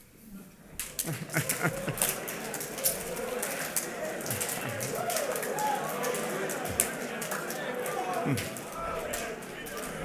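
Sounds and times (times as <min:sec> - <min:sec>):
hand slaps and claps: 0:00.8 - 0:09.8
men talking and calling out: 0:00.8 - 0:10.0.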